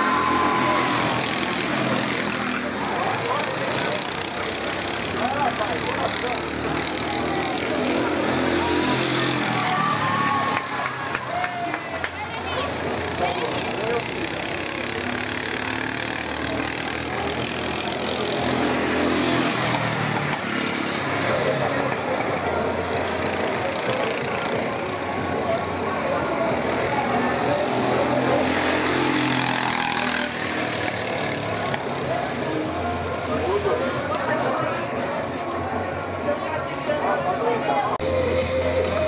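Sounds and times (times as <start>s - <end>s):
go-kart engines running: 0.0s - 39.0s
indistinct background voices: 30.7s - 39.0s.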